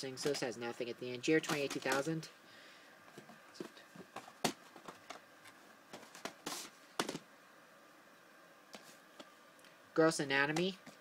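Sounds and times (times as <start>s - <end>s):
plastic cases clicking and knocking: 1.4s - 2.1s, 3.1s - 5.2s, 5.9s - 7.3s.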